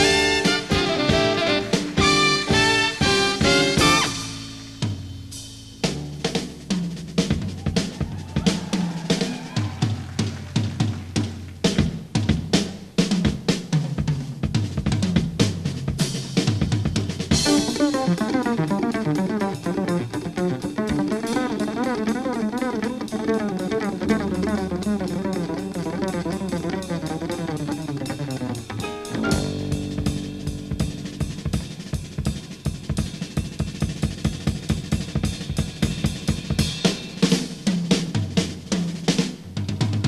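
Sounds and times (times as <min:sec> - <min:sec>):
pitched instruments and bass line: 0:00.0 - 0:10.9, 0:17.2 - 0:34.7
drum kit playing: 0:00.0 - 0:40.0.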